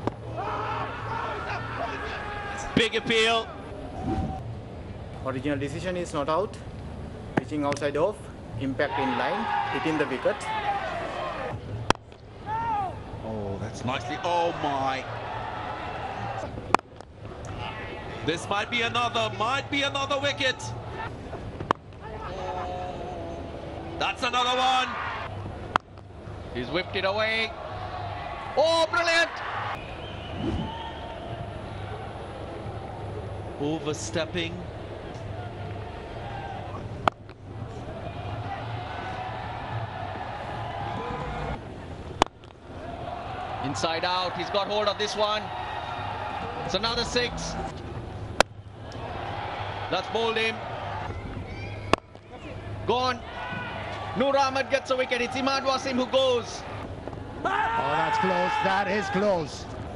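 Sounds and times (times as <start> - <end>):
stadium crowd noise: 0.0 - 59.9
bat striking ball: 37.0 - 37.4, 42.1 - 42.6.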